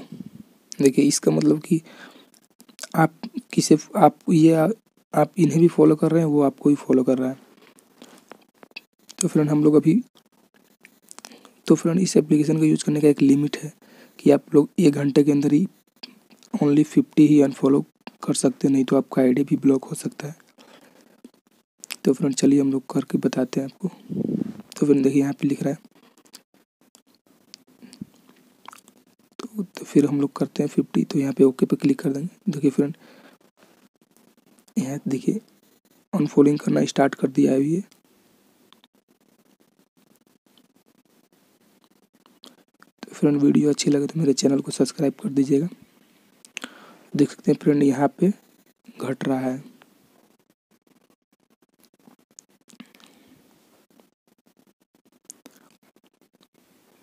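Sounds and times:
mouth clicks near microphone: 46.4 - 46.7.

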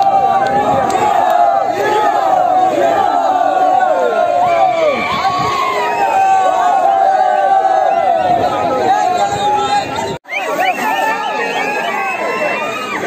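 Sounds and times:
crowd shouting and cheering: 0.0 - 13.0.

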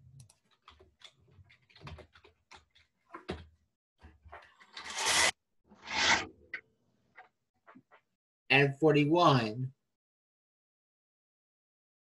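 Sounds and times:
small clicks and rustles: 0.0 - 3.4.

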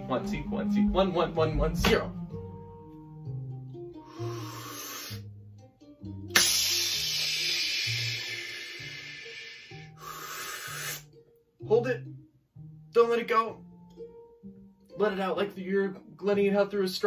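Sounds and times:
soft background music: 0.0 - 17.0
person breathing in deeply: 4.0 - 5.2, 6.4 - 11.0.

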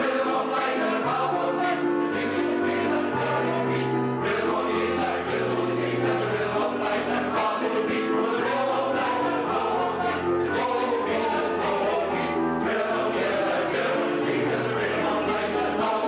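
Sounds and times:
male voice choir singing: 0.0 - 16.0.

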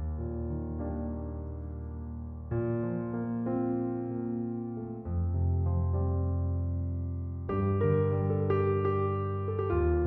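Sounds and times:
slow gentle piano music: 0.0 - 10.0.

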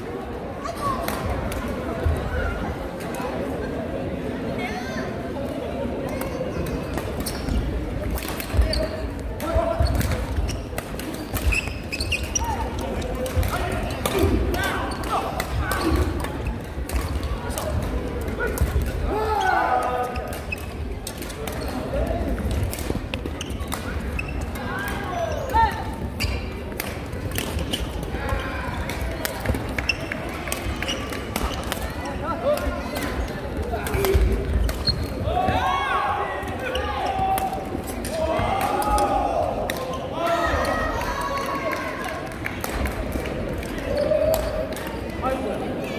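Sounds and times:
murmur of voices: 0.0 - 45.9
shoes squeaking on floor: 7.2 - 7.7, 8.6 - 9.2, 9.8 - 13.0, 23.2 - 24.6, 25.2 - 28.5, 29.8 - 31.7, 34.5 - 35.3
racket hitting shuttlecock: 26.3 - 28.0.

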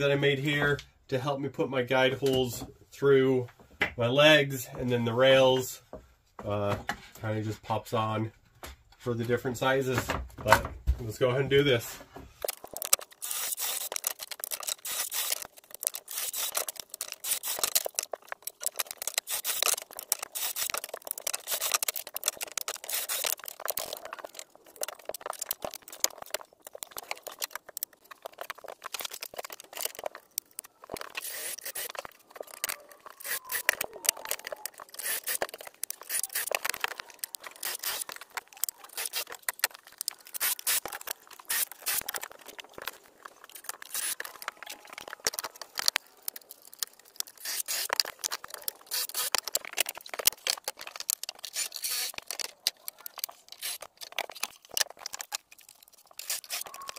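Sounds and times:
cordless drill boring into wood: 13.2 - 17.9, 19.2 - 20.8, 21.4 - 21.9, 22.7 - 23.9, 31.0 - 32.1, 33.1 - 39.4, 40.3 - 42.2, 43.6 - 44.3, 47.4 - 48.1, 48.8 - 49.5, 51.4 - 52.3, 53.5 - 53.9, 56.2 - 56.7.

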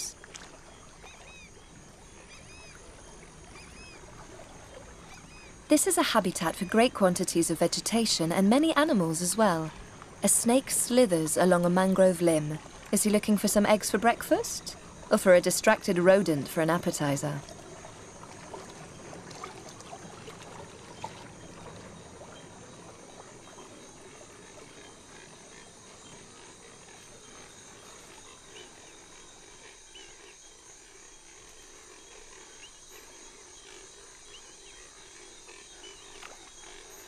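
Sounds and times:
soft swamp hiss: 0.0 - 37.0.

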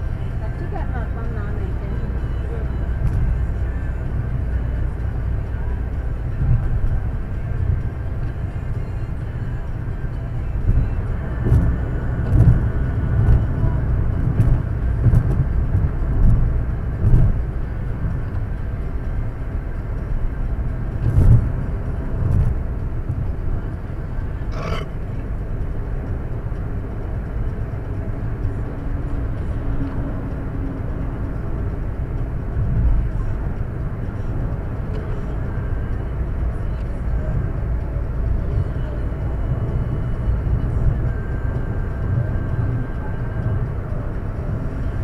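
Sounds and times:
car road noise rumble: 0.0 - 45.0.

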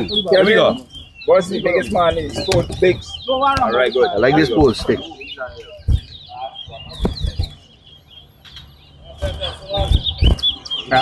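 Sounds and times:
finches twittering: 0.0 - 11.0
dull thumps: 1.8 - 5.1, 5.8 - 7.6.

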